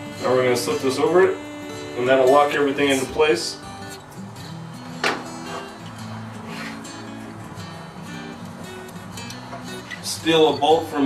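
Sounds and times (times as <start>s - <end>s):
acoustic guitar music: 0.0s - 11.0s.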